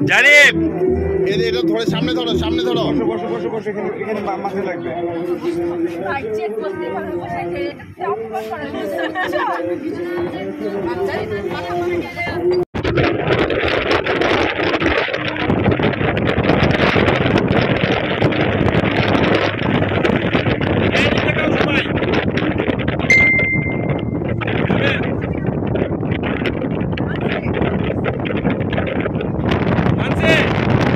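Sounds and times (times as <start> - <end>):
people talking over one another: 0.0 - 12.6, 20.0 - 30.9
wind on microphone: 0.0 - 30.9
steady held tone: 23.1 - 24.4.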